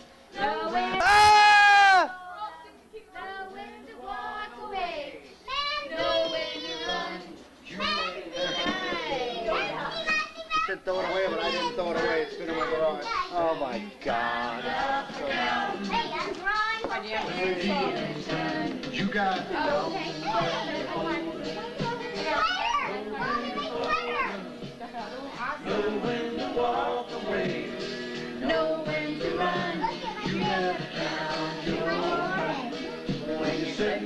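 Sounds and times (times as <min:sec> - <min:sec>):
children calling out: 0:01.0 - 0:02.2, 0:21.6 - 0:24.6
young children calling and chattering: 0:01.0 - 0:14.0, 0:15.1 - 0:26.8, 0:29.4 - 0:33.9
music with singing: 0:03.1 - 0:10.2, 0:10.9 - 0:34.0.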